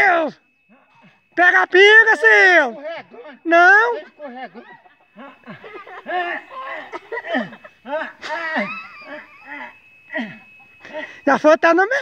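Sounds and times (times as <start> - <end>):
snickering laughter: 4.3 - 10.7.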